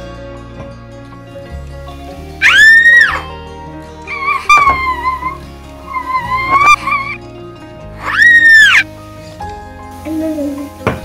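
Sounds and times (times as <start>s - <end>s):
background music: 0.0s - 11.0s
child squealing with delight: 2.4s - 3.3s, 4.1s - 7.2s, 8.0s - 8.8s.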